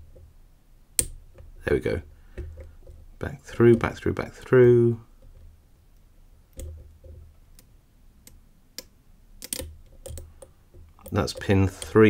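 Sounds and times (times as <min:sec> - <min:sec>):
lock pick metallic clicks: 0:01.0 - 0:01.5, 0:05.2 - 0:12.0
dull bumps of lock handled: 0:02.3 - 0:04.1, 0:06.5 - 0:07.4.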